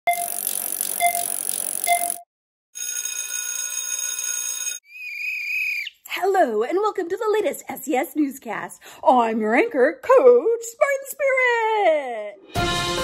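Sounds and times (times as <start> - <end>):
electronic ringing tone: 0.1 - 2.2, 2.8 - 4.8
short beeps: 0.1 - 2.2
whistle blown with trill: 0.1 - 2.2.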